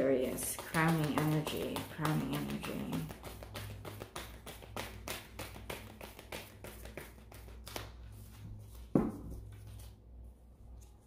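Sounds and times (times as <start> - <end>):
cards being shuffled: 0.3 - 10.0.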